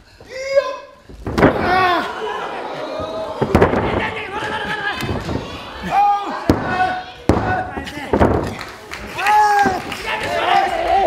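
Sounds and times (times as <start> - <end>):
people shouting: 1.5 - 8.1, 9.1 - 11.0.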